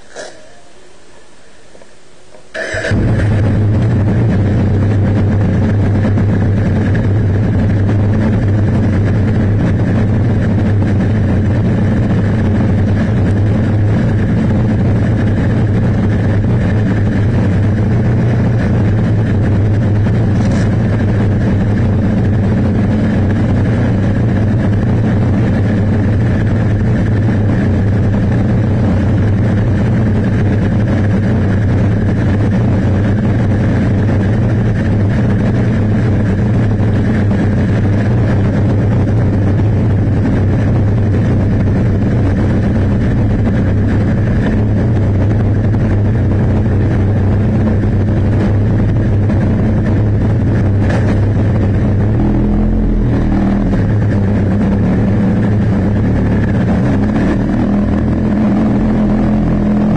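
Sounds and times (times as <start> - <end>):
motorcycle engine idling: 0.0 - 59.9.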